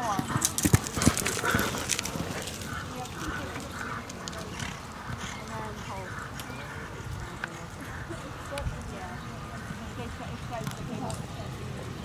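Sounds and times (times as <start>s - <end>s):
horse hoofbeats cantering on dirt: 0.0s - 5.5s
faint voices: 0.0s - 12.0s.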